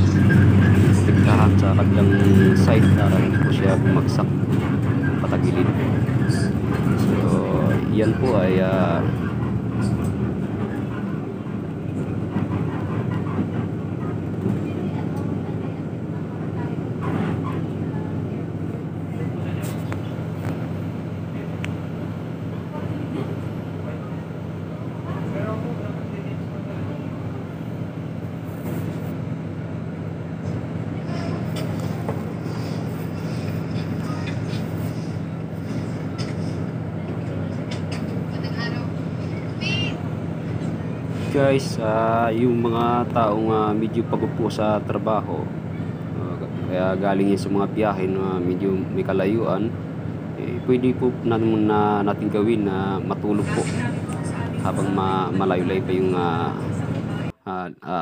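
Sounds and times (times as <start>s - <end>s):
bus engine droning: 0.0s - 57.4s
road noise: 0.0s - 57.4s.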